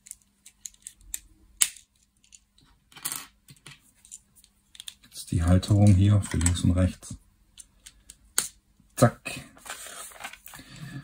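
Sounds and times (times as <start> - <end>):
plastic bricks clicking: 0.0 - 2.4.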